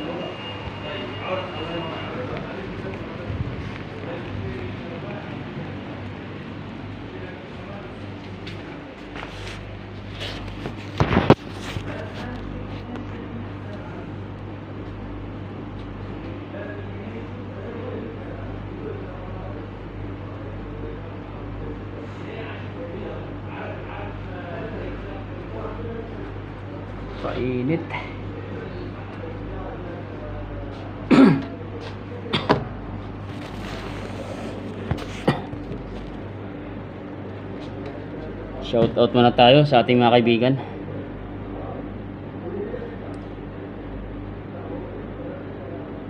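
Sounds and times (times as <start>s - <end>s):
steady low hum: 0.0s - 46.0s
hand scraping phone microphone: 9.1s - 12.9s, 33.2s - 36.2s
man clearing his throat: 31.1s - 31.6s, 32.3s - 32.6s, 35.2s - 35.6s.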